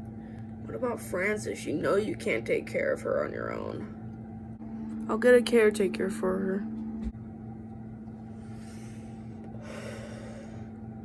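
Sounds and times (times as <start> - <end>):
low room tone hum: 0.0 - 11.0.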